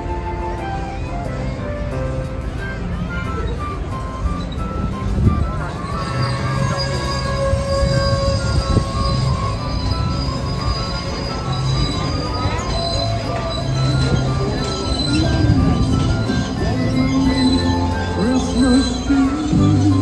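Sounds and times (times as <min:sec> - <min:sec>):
music: 0:00.0 - 0:20.0
steel wheels squealing on rails: 0:00.0 - 0:20.0.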